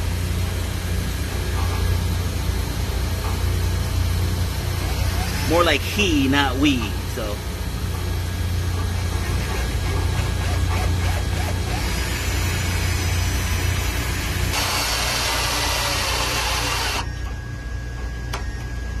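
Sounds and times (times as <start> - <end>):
drill grinding through steel: 4.8 - 5.7, 10.4 - 17.1.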